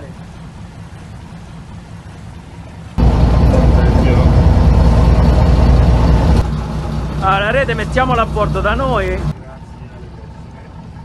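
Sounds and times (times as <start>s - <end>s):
rushing water noise: 0.0s - 10.6s
boat engine humming: 0.0s - 11.0s.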